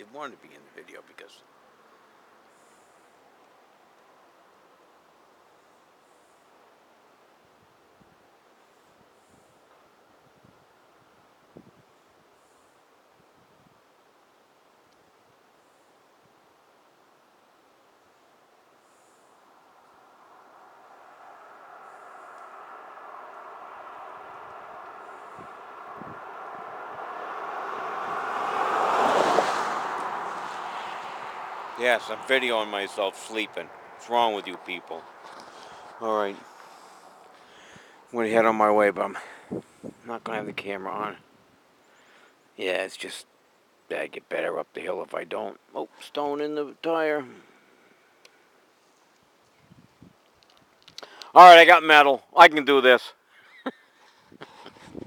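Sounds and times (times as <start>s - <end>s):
pickup truck driving past: 19.4s - 37.5s.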